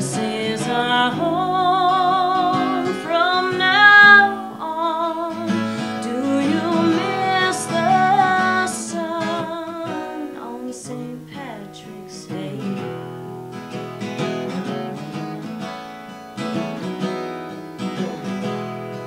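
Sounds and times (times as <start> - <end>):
woman singing: 0.0 - 13.3
acoustic guitar playing: 0.0 - 19.0.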